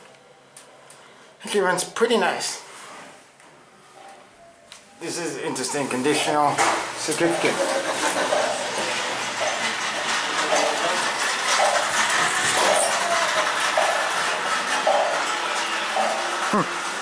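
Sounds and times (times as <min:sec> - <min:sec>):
store background noise: 0:00.0 - 0:17.0
indistinct distant voices: 0:03.8 - 0:17.0.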